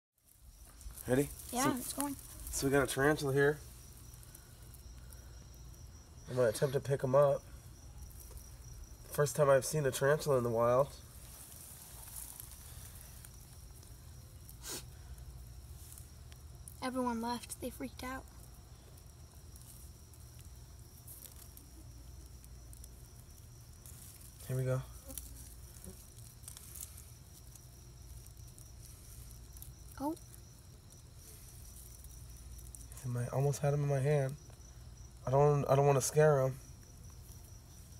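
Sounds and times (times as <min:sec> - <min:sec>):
crickets trilling: 0:00.2 - 0:37.9.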